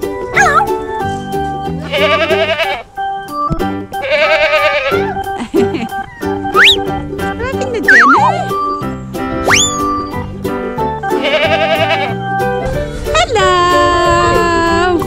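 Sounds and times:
goat bleats: 1.8s - 2.9s, 4.0s - 5.0s, 11.1s - 12.2s
upbeat children's music: 3.1s - 15.0s.

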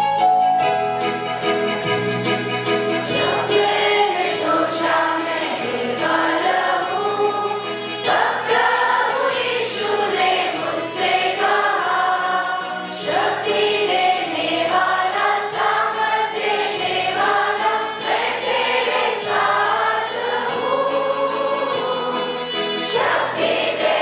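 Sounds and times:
instrumental accompaniment: 0.0s - 24.0s
children's choir singing: 3.0s - 24.0s.

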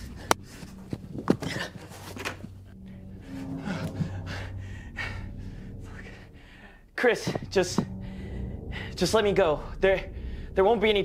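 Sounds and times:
low steady hum: 0.0s - 11.0s
person breathing heavily: 7.9s - 9.0s.

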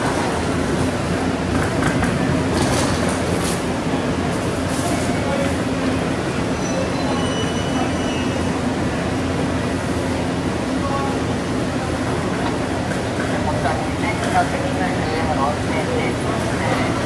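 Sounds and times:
electric train low rumble: 0.0s - 17.0s
faint high squeals: 6.6s - 8.5s.

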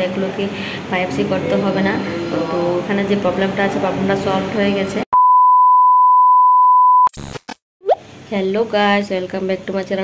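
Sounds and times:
electronic beep: 5.2s - 7.1s.

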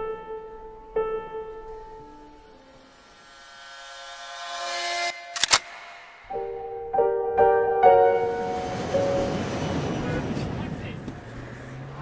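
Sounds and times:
piano chord ringing: 0.0s - 5.3s, 6.1s - 10.0s
rumbling wash of noise: 7.9s - 11.8s.

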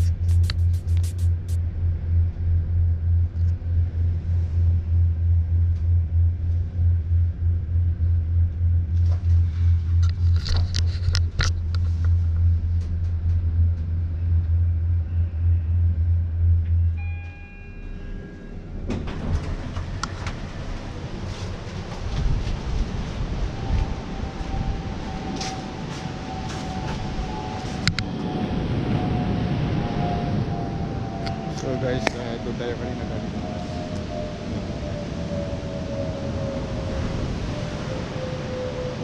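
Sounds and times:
lift humming and rumbling: 0.0s - 39.0s
open-air noise: 0.0s - 39.0s
short electronic chime: 16.8s - 18.7s.

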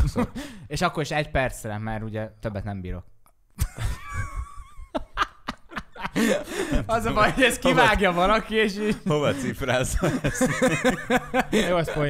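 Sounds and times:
men laughing: 0.0s - 0.5s, 3.6s - 12.0s.

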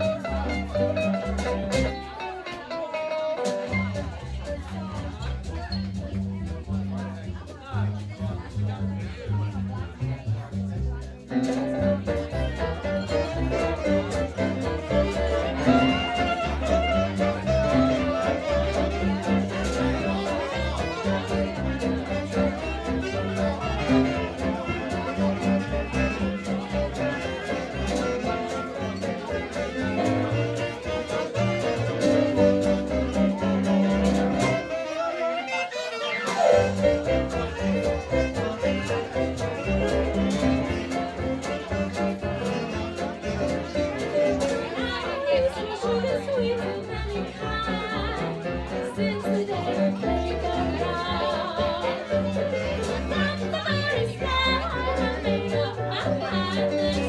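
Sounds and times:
steady bass line: 0.0s - 2.0s, 3.7s - 34.7s
jazz band playing: 0.0s - 57.0s
clarinet: 11.4s - 46.4s.

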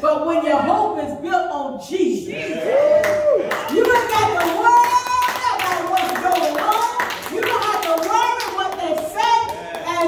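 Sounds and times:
rhythmic hand clapping: 3.0s - 10.0s.

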